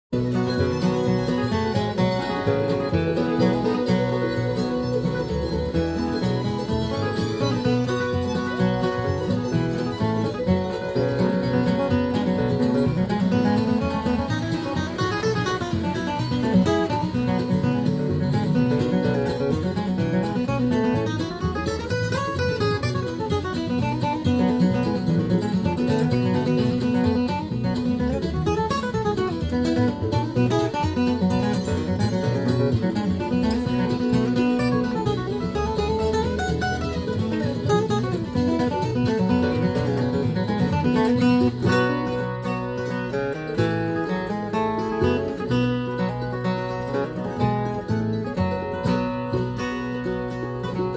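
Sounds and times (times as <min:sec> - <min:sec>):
acoustic guitar bluegrass solo: 0:00.1 - 0:50.9.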